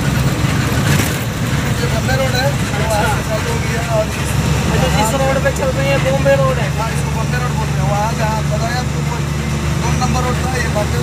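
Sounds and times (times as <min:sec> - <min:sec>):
road noise: 0:00.0 - 0:11.0
truck diesel engine droning: 0:00.0 - 0:11.0.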